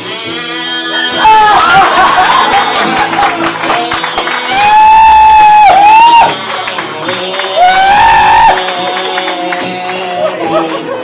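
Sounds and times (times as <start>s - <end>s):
person singing through pa: 0.0s - 11.0s
recorded backing track: 0.0s - 11.0s.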